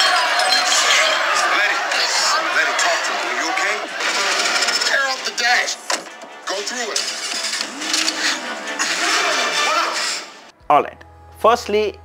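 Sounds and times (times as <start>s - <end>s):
action film soundtrack: 4.0s - 11.3s.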